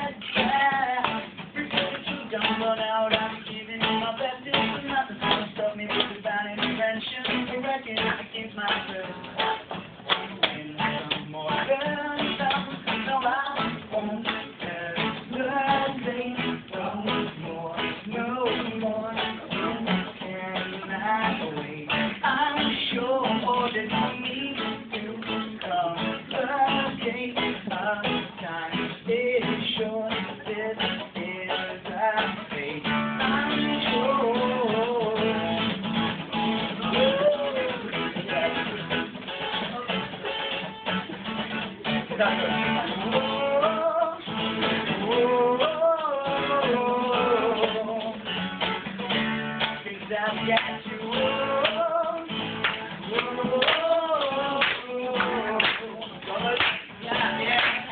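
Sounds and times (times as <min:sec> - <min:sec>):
man singing: 0:00.0 - 0:41.1, 0:41.8 - 0:48.4, 0:49.4 - 0:57.9
acoustic guitar strumming: 0:00.0 - 0:57.9.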